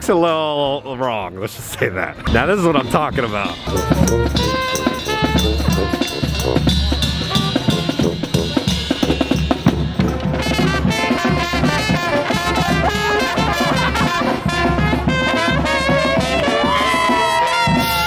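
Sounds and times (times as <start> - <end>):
brass band playing: 2.3 - 18.0
drum beat: 2.3 - 18.0
trombone: 3.2 - 18.0
trumpet: 3.2 - 18.0
saxophone: 3.5 - 9.3, 10.3 - 18.0.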